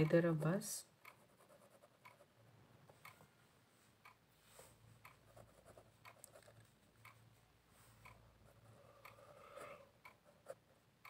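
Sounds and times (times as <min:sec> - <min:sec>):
pen scratching on paper: 0:01.1 - 0:02.4, 0:05.2 - 0:06.7, 0:08.5 - 0:10.6.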